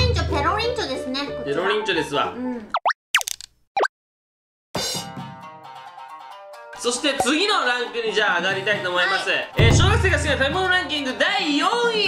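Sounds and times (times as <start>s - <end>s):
light background music: 0.0s - 2.5s, 5.2s - 12.0s.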